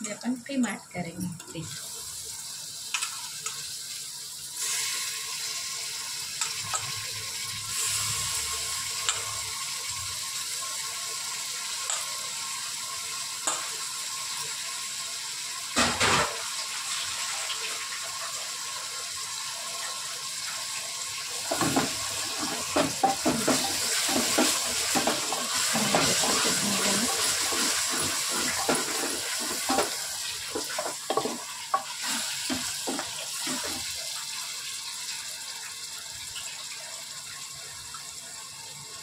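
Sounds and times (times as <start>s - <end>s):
meat sizzling in oil: 0.0s - 39.0s.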